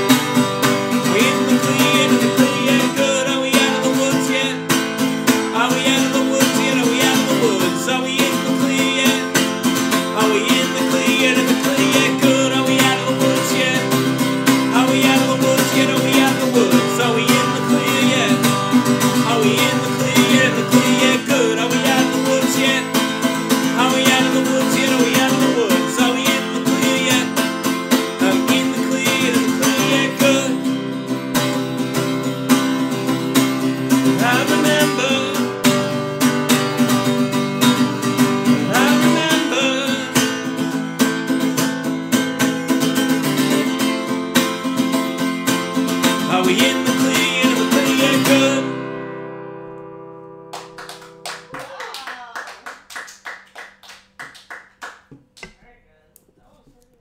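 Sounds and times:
acoustic guitar strumming: 0:00.0 - 0:51.5
picked guitar notes: 0:00.0 - 0:51.5
man singing: 0:00.9 - 0:31.1, 0:33.7 - 0:36.0, 0:37.2 - 0:40.8, 0:43.2 - 0:44.2, 0:45.7 - 0:49.1.

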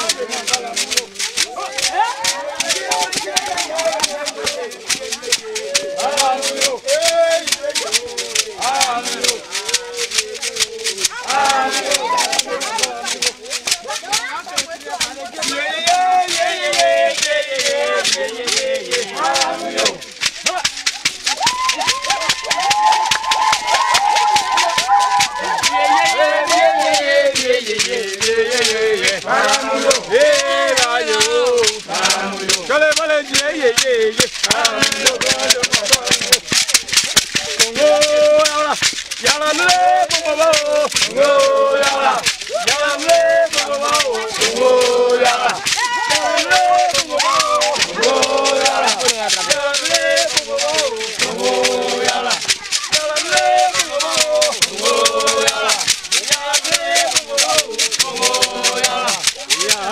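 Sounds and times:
gourd rattles shaken: 0:00.0 - 0:59.9
group singing: 0:00.0 - 0:59.9.

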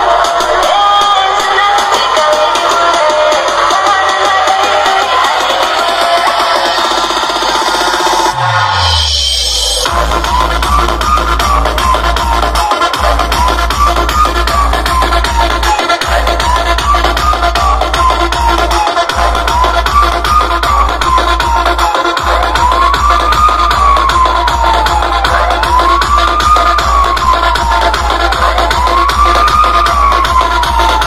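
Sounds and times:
electronic dance music: 0:00.0 - 0:31.0
siren-like rising and falling tone: 0:06.1 - 0:31.0.

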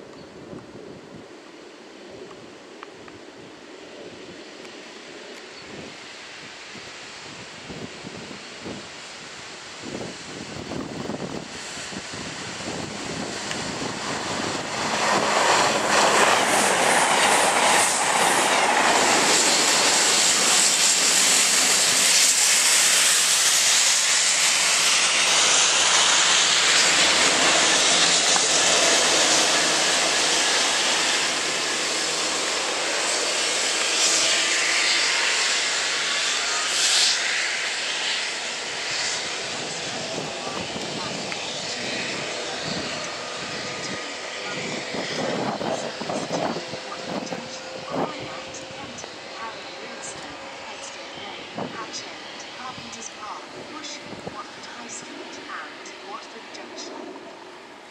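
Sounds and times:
diesel train rushing past: 0:05.7 - 0:57.9
water jets hissing onto rails: 0:06.0 - 0:56.5.

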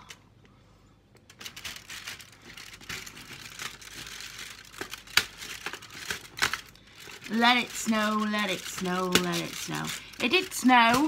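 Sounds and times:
cardboard and plastic crinkling: 0:01.3 - 0:11.0.

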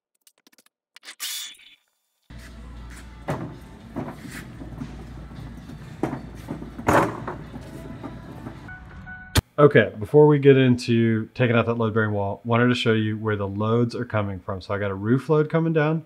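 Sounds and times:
low rumble of lumber cart: 0:02.3 - 0:09.0
boards knocking and clanking: 0:02.5 - 0:08.7.

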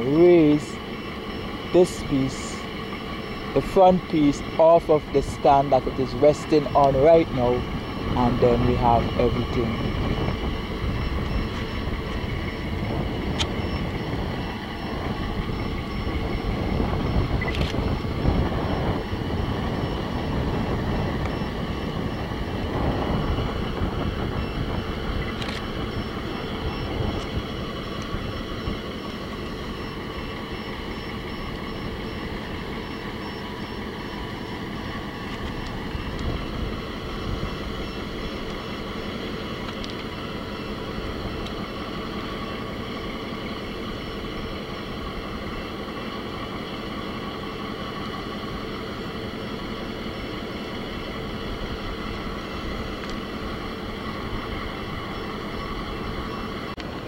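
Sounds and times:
heavy diesel machinery running: 0:00.0 - 0:57.0.

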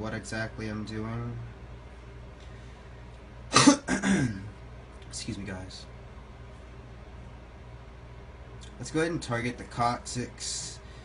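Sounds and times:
man clearing his throat: 0:03.5 - 0:04.5
man coughing: 0:03.5 - 0:04.5.

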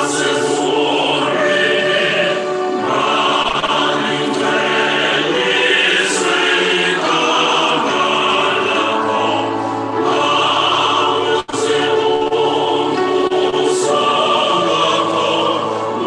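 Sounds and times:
choir singing held chords: 0:00.0 - 0:16.0.

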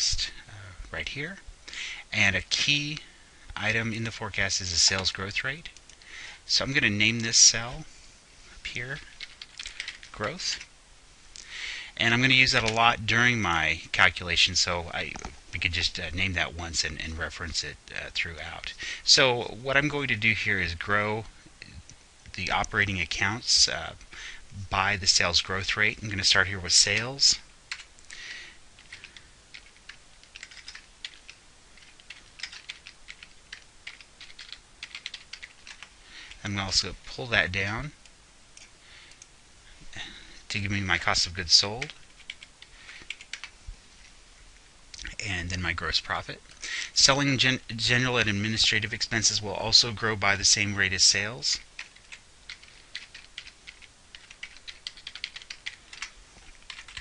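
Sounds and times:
computer keyboard typing: 0:09.0 - 0:10.4, 0:27.7 - 0:27.9, 0:28.8 - 0:36.0, 0:41.8 - 0:43.5, 0:51.6 - 0:57.0.

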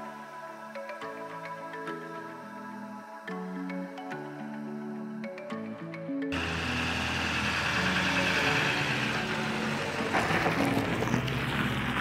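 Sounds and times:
soft background music: 0:00.0 - 0:12.0
pickup truck towing trailer passing: 0:06.4 - 0:12.0.

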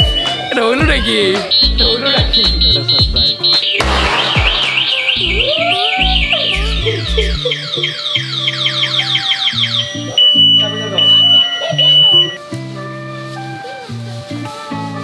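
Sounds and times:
music with steady bass line: 0:00.0 - 0:15.0
beeping alarm tone: 0:01.5 - 0:05.6, 0:06.2 - 0:12.4
electronic siren-like effect: 0:02.6 - 0:12.4
confetti popper hissing burst: 0:03.8 - 0:06.3.

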